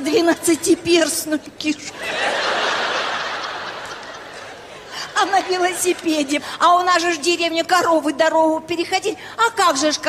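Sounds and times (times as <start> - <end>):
large audience laughing: 1.9 - 6.4.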